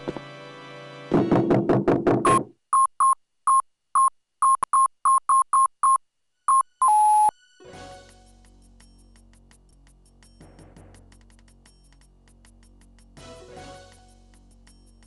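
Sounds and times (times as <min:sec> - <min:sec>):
short electronic beeps: 0:02.3 - 0:07.3.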